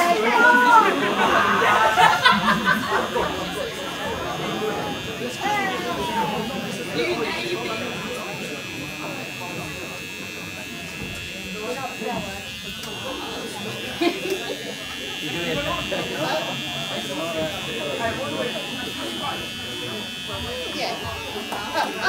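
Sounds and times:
electric hair clippers buzzing: 0.0s - 22.0s
people chattering: 0.0s - 22.0s.

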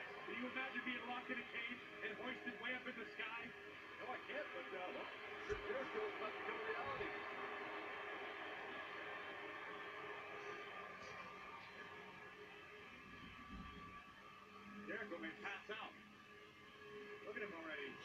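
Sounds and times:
commentators' voices on television: 0.0s - 18.0s
music on television: 0.0s - 18.0s.

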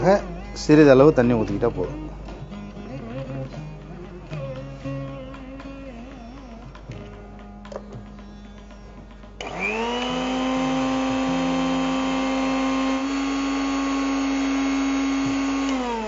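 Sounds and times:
mixer grinder motor whining: 9.4s - 16.0s.

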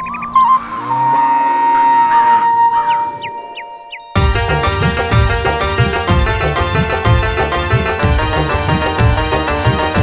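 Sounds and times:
bamboo flute long note: 0.0s - 3.8s.

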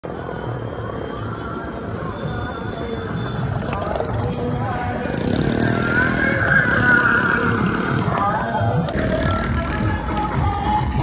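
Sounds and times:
motorcycle engines running: 3.4s - 10.6s
music from sound system: 8.2s - 11.0s.

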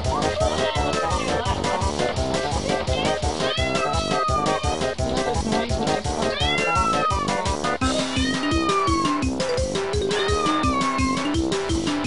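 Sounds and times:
background music with steady beat: 0.0s - 12.0s
cat meowing: 2.8s - 5.0s, 6.1s - 9.4s, 10.0s - 11.4s.

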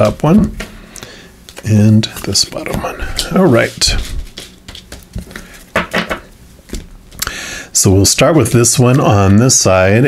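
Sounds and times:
cards tapping and scraping on mat: 2.6s - 6.9s.

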